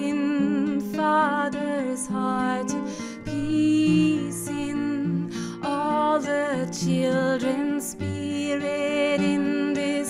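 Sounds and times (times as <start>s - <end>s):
acoustic guitar: 0.0s - 10.0s
cello: 0.0s - 10.0s
woman singing: 0.0s - 10.0s.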